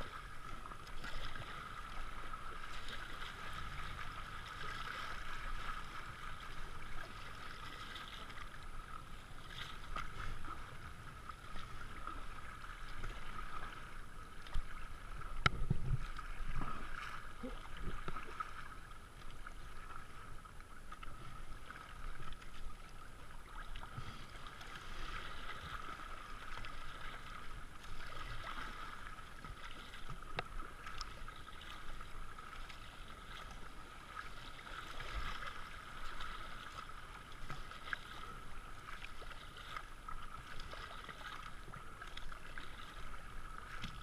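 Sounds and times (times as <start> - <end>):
water rushing and splashing: 0.0 - 44.0.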